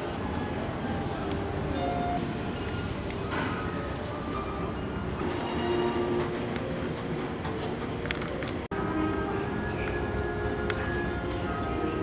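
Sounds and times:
terminal background hum: 0:00.0 - 0:12.0.

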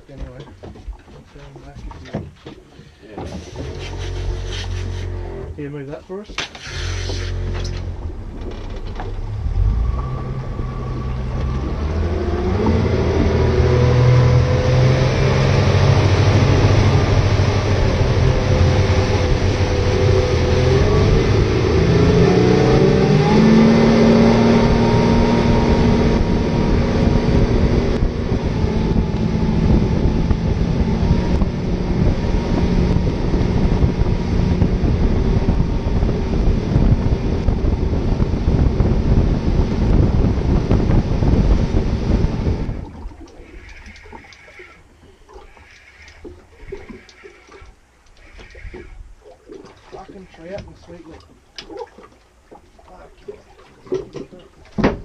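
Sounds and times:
wind: 0:00.0 - 0:55.0
motorboat engine speeding up: 0:03.2 - 0:05.8, 0:06.6 - 0:54.6
rushing water: 0:06.5 - 0:32.8, 0:40.9 - 0:55.0.

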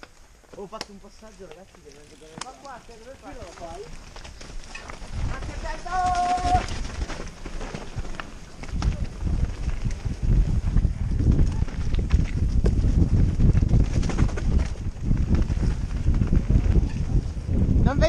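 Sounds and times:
tyres rumbling on trail: 0:00.0 - 0:18.0
wind over microphone: 0:03.3 - 0:18.0.

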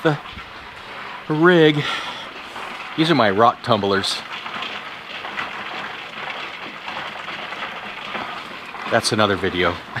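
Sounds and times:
rock tumbler rattling: 0:00.0 - 0:10.0.

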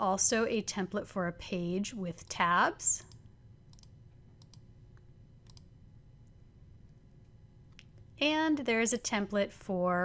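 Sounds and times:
low room hiss: 0:00.0 - 0:10.0
computer mouse clicks: 0:03.0 - 0:05.7.

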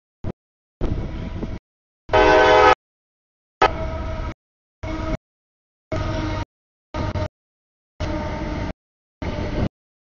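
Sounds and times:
locomotive engine and wheel rumble: 0:00.2 - 0:02.8, 0:03.6 - 0:05.2, 0:05.9 - 0:07.3, 0:08.0 - 0:09.7
loud train horn blast: 0:01.0 - 0:02.8, 0:03.6 - 0:05.2, 0:08.0 - 0:09.4.

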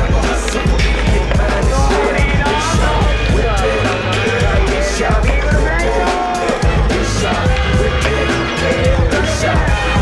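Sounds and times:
music with a steady beat: 0:00.0 - 0:10.0.

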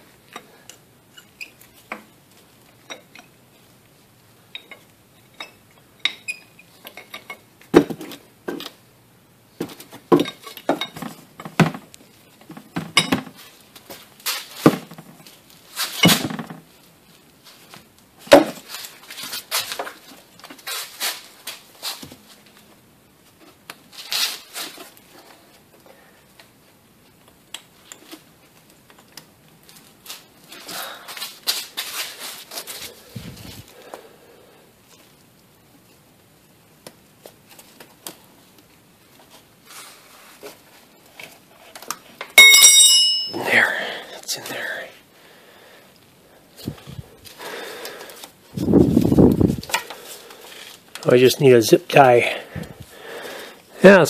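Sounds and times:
metallic clang ringing: 0:42.4 - 0:43.6.

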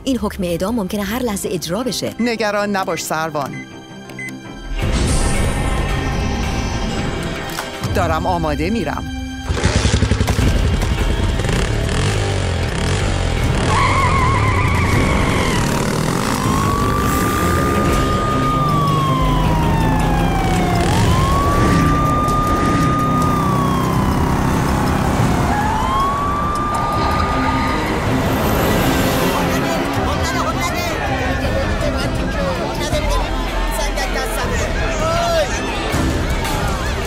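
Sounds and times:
motorcycle engine: 0:09.4 - 0:32.3
traffic noise: 0:11.0 - 0:35.0
police siren wailing: 0:13.6 - 0:31.4.

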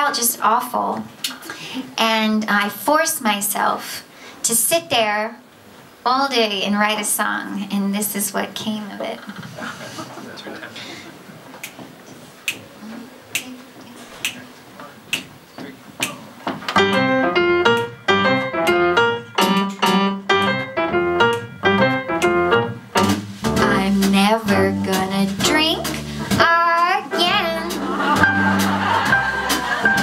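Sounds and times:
jazz piano chords: 0:16.7 - 0:30.0
upright bass: 0:16.8 - 0:30.0.

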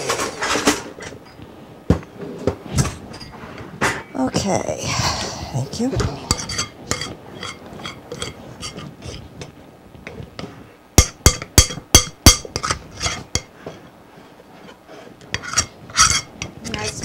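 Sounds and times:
spoon stirring batter in a bowl: 0:06.0 - 0:17.0.

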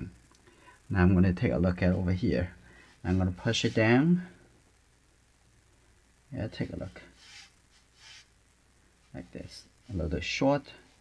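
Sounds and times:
brush scratching on paper: 0:03.0 - 0:04.1, 0:06.6 - 0:08.3.

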